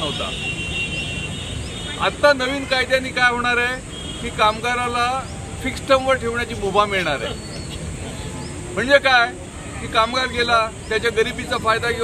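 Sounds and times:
low traffic rumble: 0.0 - 12.0
man speaking: 2.0 - 7.4.

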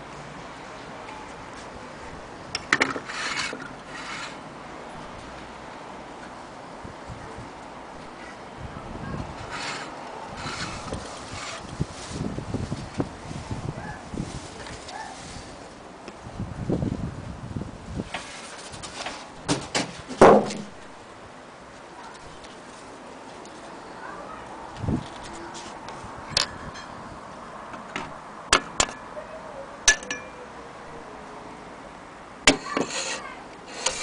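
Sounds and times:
hand rubbing frosted glass: 3.0 - 4.4, 9.3 - 11.8, 32.5 - 34.0.

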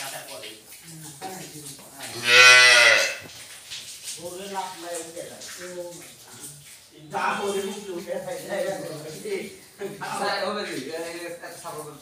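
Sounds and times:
cow mooing: 2.1 - 3.2.

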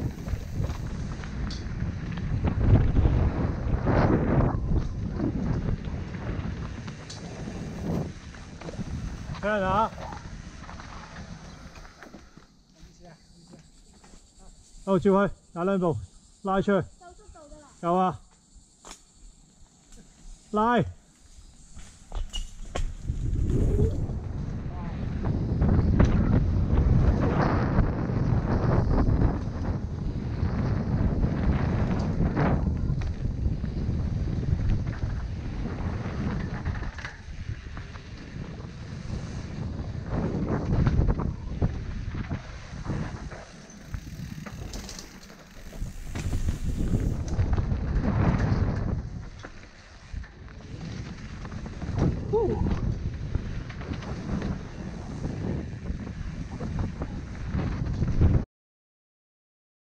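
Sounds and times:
wind rushing over microphone: 0.0 - 12.3, 20.3 - 58.4
bike tyre noise: 0.0 - 16.4, 18.2 - 58.4
bike knocks and rattles: 21.7 - 23.6, 29.1 - 55.6.

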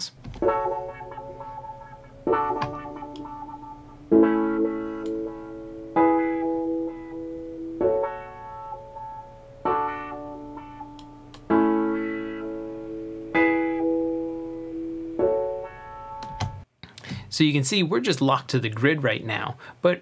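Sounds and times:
filtered piano chords: 0.3 - 16.7.

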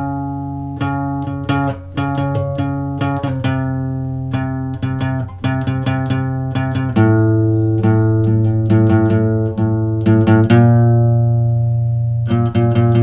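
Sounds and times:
acoustic guitar picking: 0.0 - 13.0
sustained low bass: 0.0 - 13.0.

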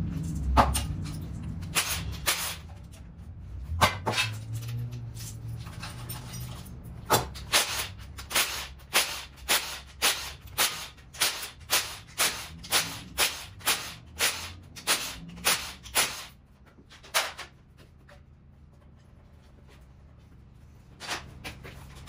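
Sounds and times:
impact wrench bursts: 1.7 - 2.7, 7.1 - 16.4.

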